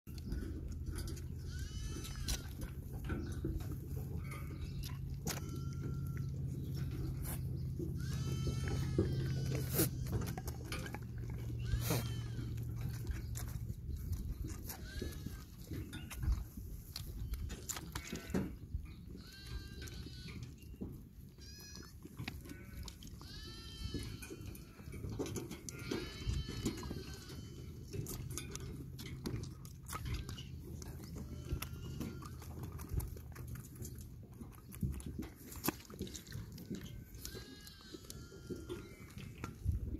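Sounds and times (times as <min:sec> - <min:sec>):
low steady hum: 0:00.1 - 0:21.8
goat kids bleating: 0:00.3 - 0:39.9.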